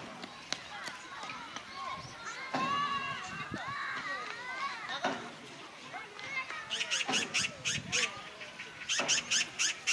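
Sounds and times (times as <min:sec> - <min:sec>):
children shouting: 0:00.0 - 0:08.4.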